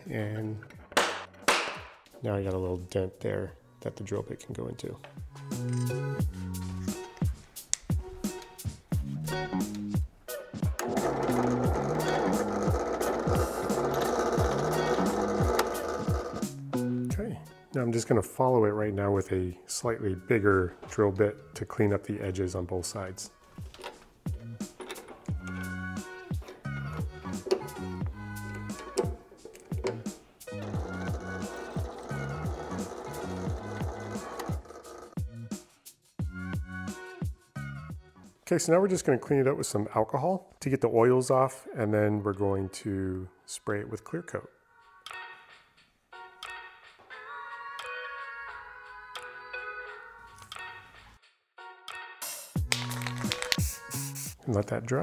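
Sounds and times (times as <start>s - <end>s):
background music: 0.0s - 55.0s
drill press whirring: 10.7s - 16.6s, 27.3s - 35.2s.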